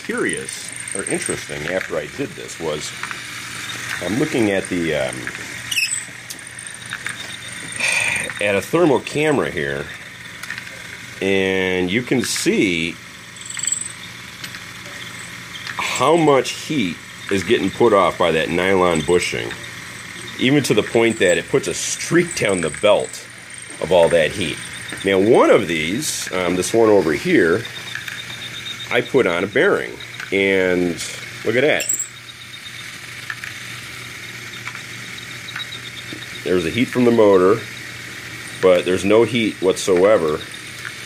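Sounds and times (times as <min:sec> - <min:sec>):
conveyor motor humming: 0:00.0 - 0:41.0
faint high whine: 0:00.0 - 0:41.0.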